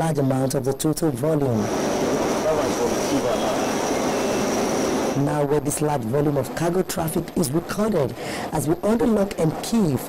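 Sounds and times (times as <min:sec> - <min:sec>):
high-pitched whine: 0:01.5 - 0:08.0
forklift mechanical noise: 0:01.6 - 0:05.2
faint voices: 0:02.2 - 0:05.4.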